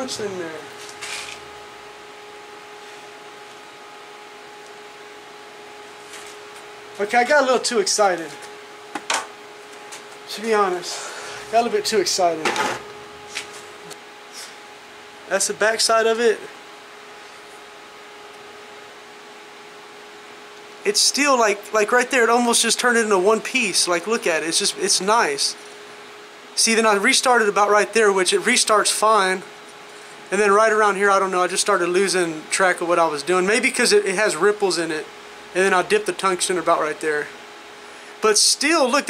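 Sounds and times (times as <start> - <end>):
man speaking: 0.0 - 0.8, 7.0 - 8.4, 10.3 - 12.8, 15.3 - 16.5, 20.8 - 25.6, 26.6 - 29.5, 30.3 - 37.3, 38.2 - 39.0
cooling fan hiss: 0.0 - 39.0
welder hum: 0.0 - 39.0.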